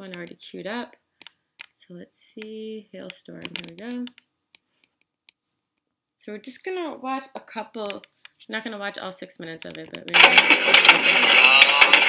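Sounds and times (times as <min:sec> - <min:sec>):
hail pounding car roof: 0:10.2 - 0:12.0.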